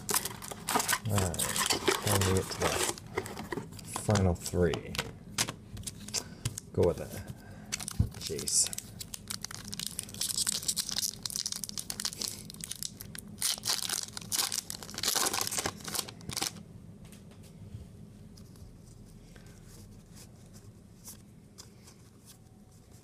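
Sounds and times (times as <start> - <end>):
foil wrapper tearing and crinkling: 0.0 - 3.0, 7.7 - 16.6.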